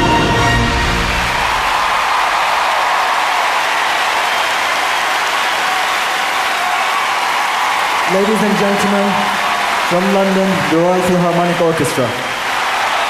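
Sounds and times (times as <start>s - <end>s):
audience applauding: 0.0s - 13.0s.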